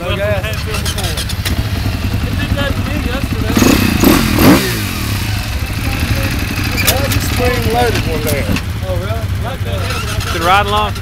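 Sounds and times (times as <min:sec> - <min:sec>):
dirt bike engines running: 0:00.0 - 0:11.0
dirt bike revving past: 0:03.4 - 0:08.5.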